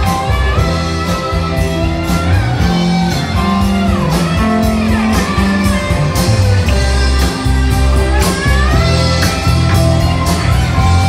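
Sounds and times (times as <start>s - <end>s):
gliding guitar lead line: 0.0s - 11.0s
live rock band playing: 0.0s - 11.0s.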